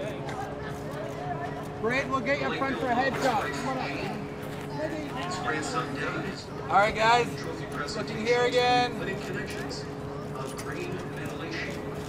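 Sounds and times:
faint voices talking: 0.0s - 12.0s
steady low hum: 0.0s - 12.0s.

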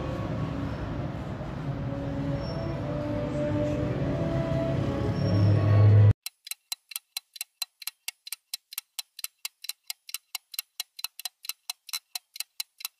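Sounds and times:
music: 1.8s - 6.1s
rapid even ticking: 6.2s - 12.9s.

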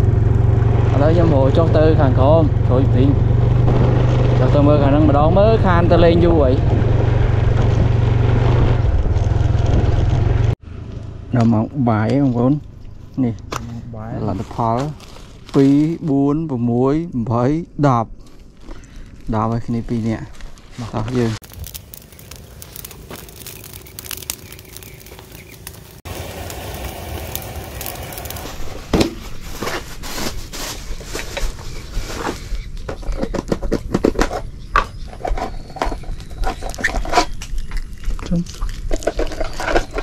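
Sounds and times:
twig fire crackling and popping: 12.0s - 16.2s, 18.2s - 33.3s, 34.7s - 40.0s
steady rustling noise: 25.0s - 37.6s.

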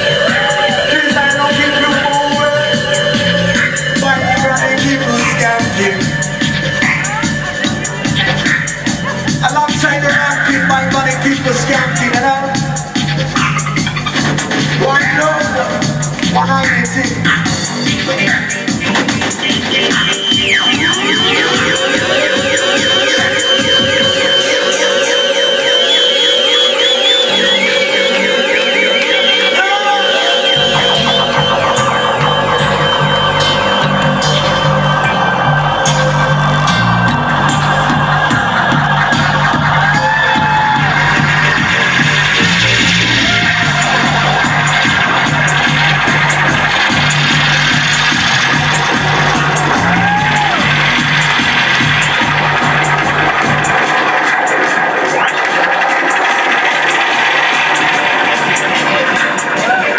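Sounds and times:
dub reggae over sound system: 0.0s - 59.9s
heavy bassline: 0.0s - 59.9s.

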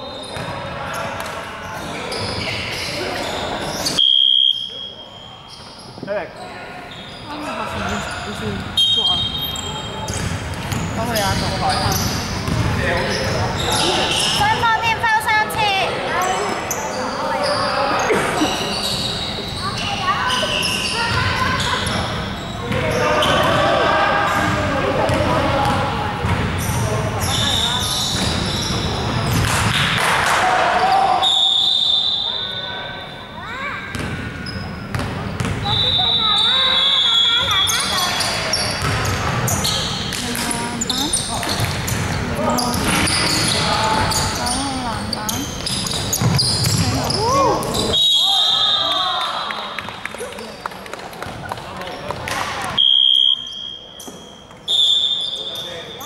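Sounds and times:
players' voices echoing: 0.0s - 56.0s.

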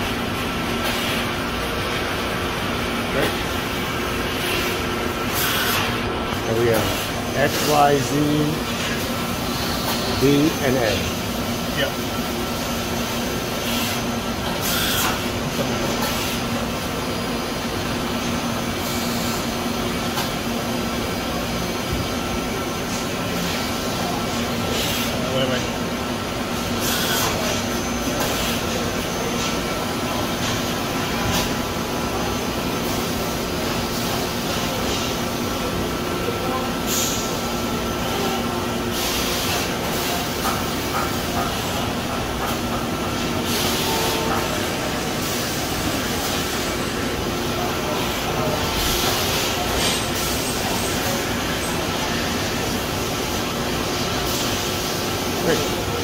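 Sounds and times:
machine mechanical hum: 0.0s - 56.0s.

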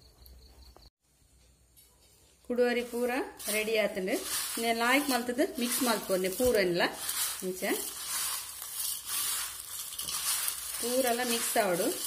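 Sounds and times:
grains rattling in steel bowl: 2.5s - 12.0s.

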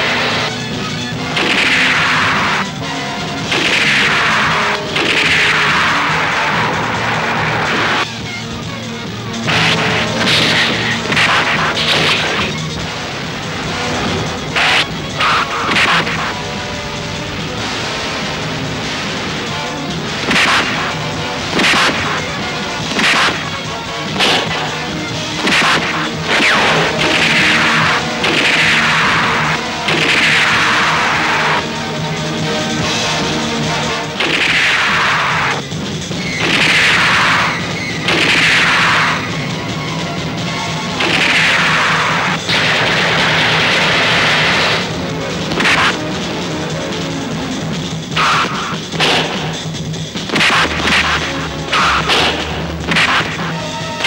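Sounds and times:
dramatic film score: 0.0s - 54.0s
punch hits: 3.4s - 5.9s, 21.6s - 24.8s, 25.4s - 30.8s, 36.4s - 37.5s.

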